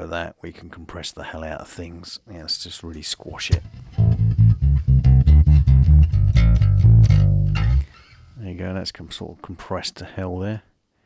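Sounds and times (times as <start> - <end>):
compressed electric bass run: 3.6 - 8.0.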